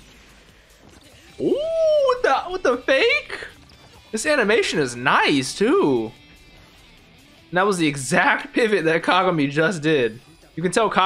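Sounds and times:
man saying ooh: 1.4s - 2.5s.

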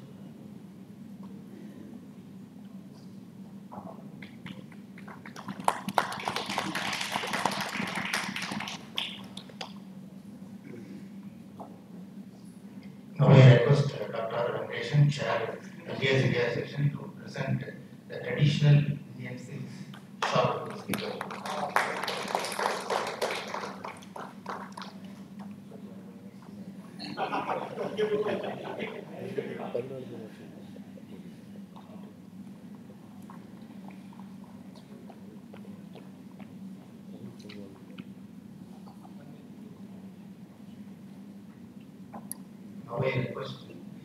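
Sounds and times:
audience clapping: 4.2s - 9.8s, 20.2s - 25.6s.

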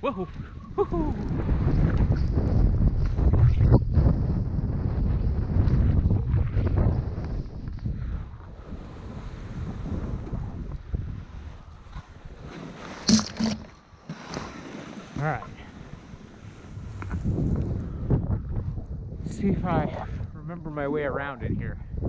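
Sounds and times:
wind buffeting microphone: 0.0s - 13.7s, 15.1s - 22.0s
skis running over snow: 12.1s - 13.2s, 14.1s - 17.4s.

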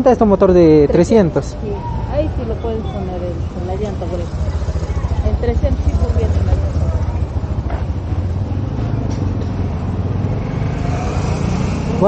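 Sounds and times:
street traffic noise: 0.0s - 12.0s
vehicle engine rumbling: 0.0s - 12.0s.

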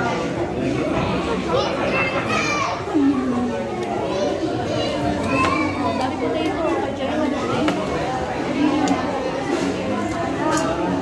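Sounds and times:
children's voices: 0.0s - 11.0s
overlapping restaurant chatter: 0.0s - 11.0s.

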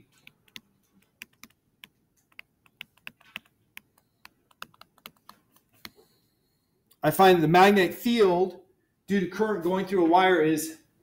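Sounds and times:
stylus tapping on tablet screen: 0.0s - 6.1s.

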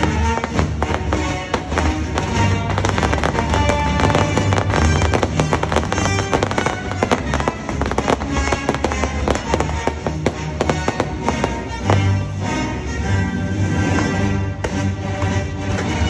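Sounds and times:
fireworks popping and banging: 0.0s - 12.4s
loud show music: 0.0s - 16.0s.

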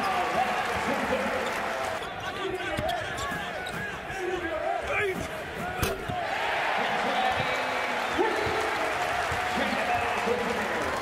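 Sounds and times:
sneakers squeaking: 1.4s - 4.1s.

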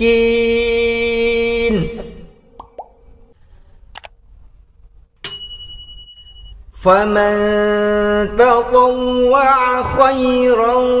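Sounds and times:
click: 3.9s - 4.2s
bell ding: 5.2s - 6.6s.

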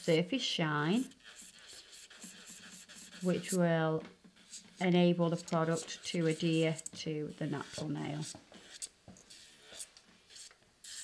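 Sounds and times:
electric nail file scratching: 0.8s - 3.6s, 4.4s - 11.0s.

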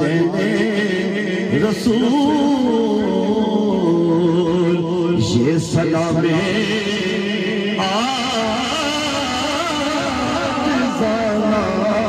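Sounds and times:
man singing into a microphone: 0.0s - 12.0s.

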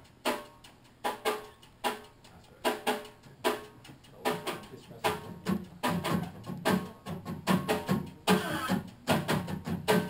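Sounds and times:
acoustic bass guitar: 4.7s - 10.0s
acoustic guitar strummed hard: 5.3s - 10.0s.

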